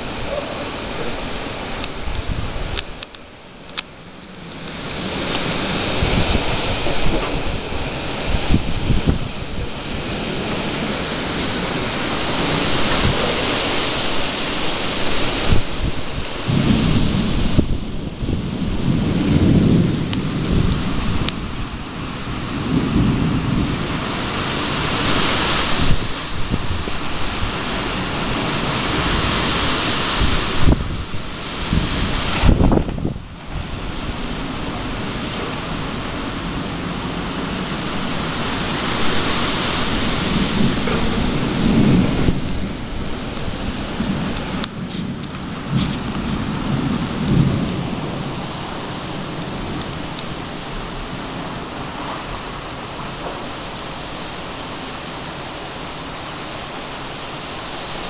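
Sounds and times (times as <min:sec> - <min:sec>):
rain hissing: 0:00.0 - 0:58.0
wind: 0:00.0 - 0:58.0
thunder rolling: 0:04.4 - 0:54.6.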